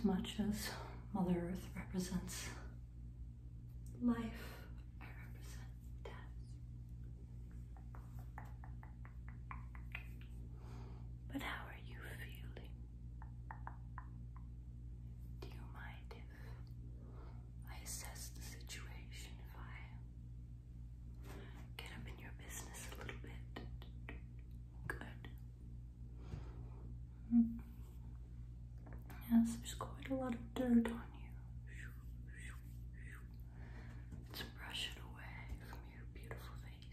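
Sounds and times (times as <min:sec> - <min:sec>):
woman whispering: 0:00.0 - 0:02.8, 0:03.9 - 0:06.7, 0:11.3 - 0:12.9, 0:15.3 - 0:16.8, 0:17.6 - 0:20.1, 0:21.7 - 0:25.6, 0:27.2 - 0:27.9, 0:29.0 - 0:33.6, 0:34.2 - 0:36.9.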